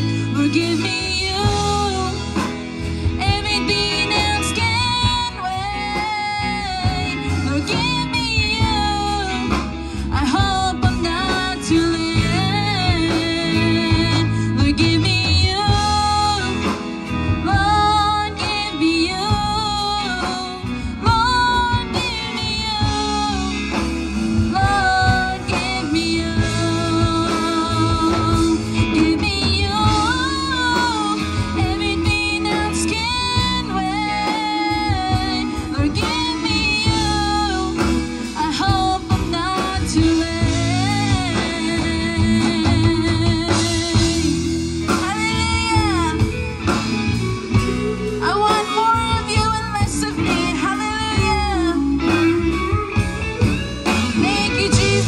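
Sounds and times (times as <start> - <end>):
band playing: 0.0 - 55.0
woman singing: 0.0 - 55.0.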